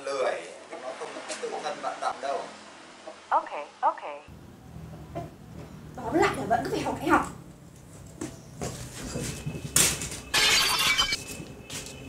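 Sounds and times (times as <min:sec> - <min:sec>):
glass shattering: 0:10.3 - 0:11.2.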